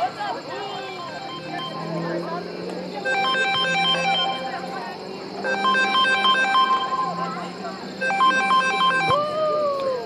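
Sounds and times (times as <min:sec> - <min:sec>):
mobile phone ringtone: 0:01.1 - 0:02.0, 0:03.0 - 0:04.6, 0:05.4 - 0:07.3, 0:08.0 - 0:09.2.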